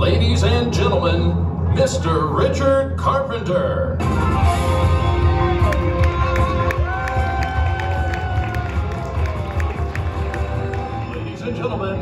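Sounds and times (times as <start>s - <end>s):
music with steady bass: 0.0s - 12.0s
audience cheering and applauding: 4.9s - 11.7s.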